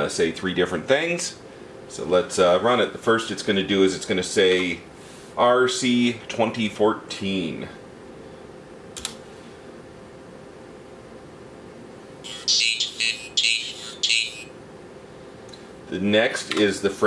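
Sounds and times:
electrical hum: 0:00.0 - 0:17.0
synthesized voice speaking: 0:12.2 - 0:14.6.

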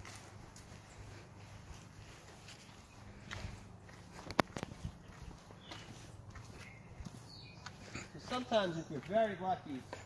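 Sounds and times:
footsteps on grass: 0:00.0 - 0:10.0.

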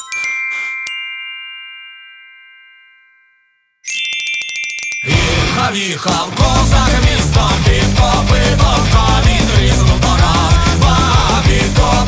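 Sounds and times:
bell-like chimes: 0:00.0 - 0:06.1
fast tinkling strikes: 0:00.0 - 0:07.6.

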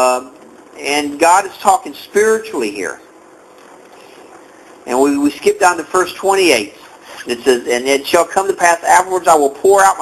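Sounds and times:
man speaking: 0:00.0 - 0:03.1, 0:04.8 - 0:10.0
faint background hiss: 0:00.0 - 0:10.0.

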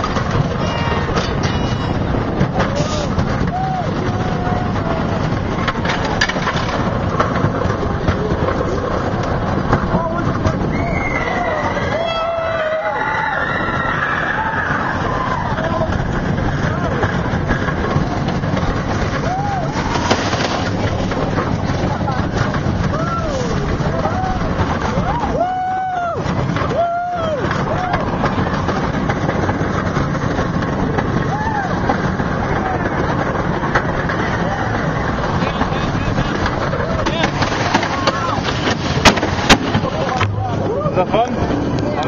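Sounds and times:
roller coaster rushing on track: 0:00.0 - 0:42.0
riders yelling: 0:02.6 - 0:05.4, 0:09.9 - 0:17.1, 0:19.1 - 0:20.0, 0:22.8 - 0:28.7.

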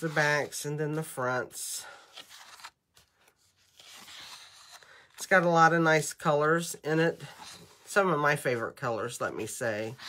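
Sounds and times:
paper sheets rustling: 0:01.9 - 0:05.4.

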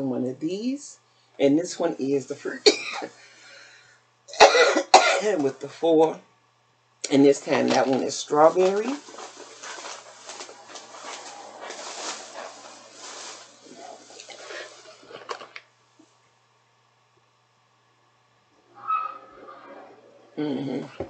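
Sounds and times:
plastic bag rustling: 0:07.3 - 0:15.6.

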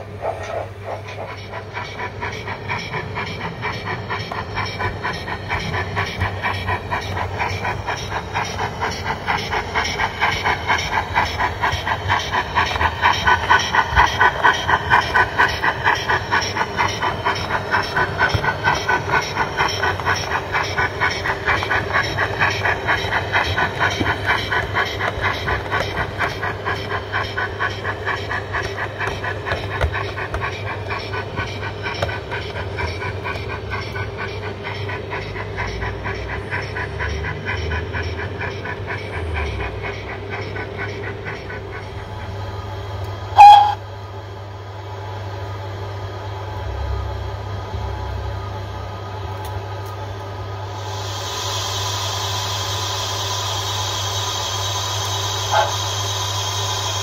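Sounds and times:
model steam locomotive chuffing: 0:00.0 - 0:57.0.

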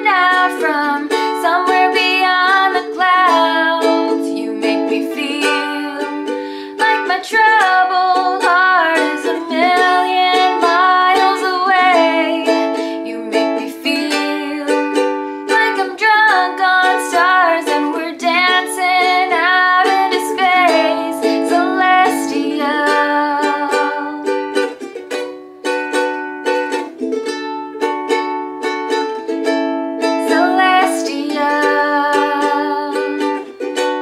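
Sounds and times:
woman singing a pop ballad: 0:00.0 - 0:14.8, 0:15.5 - 0:24.2, 0:30.2 - 0:33.1
strummed ukulele: 0:00.0 - 0:34.0.

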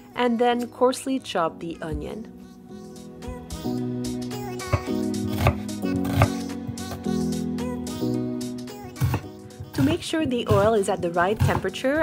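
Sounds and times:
background music: 0:00.0 - 0:12.0
knife cutting onion on wooden board: 0:04.6 - 0:07.0.

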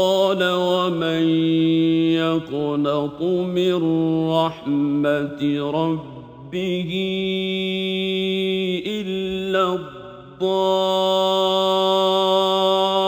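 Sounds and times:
man reciting melodically: 0:00.0 - 0:13.0.

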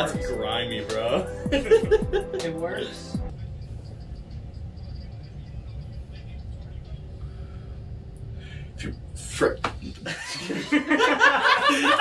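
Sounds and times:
low steady rumble: 0:03.1 - 0:11.9.

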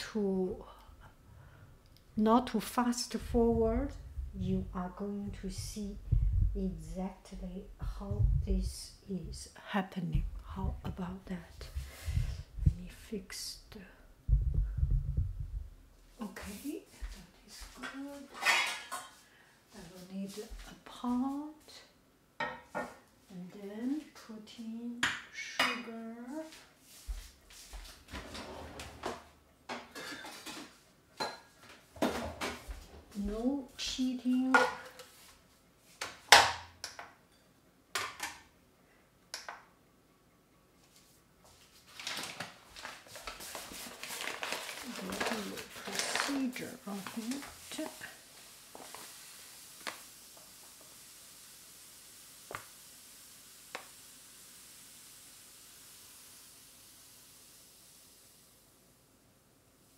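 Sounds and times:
faint hiss: 0:00.0 - 0:28.2, 0:38.3 - 0:59.9
pots and pans clattering: 0:18.3 - 0:19.1, 0:29.1 - 0:32.7.

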